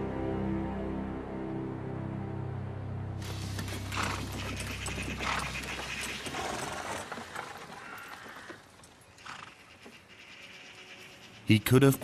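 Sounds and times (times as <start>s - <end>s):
horses walking drawing coach: 3.2s - 12.0s
horse call: 3.6s - 10.0s.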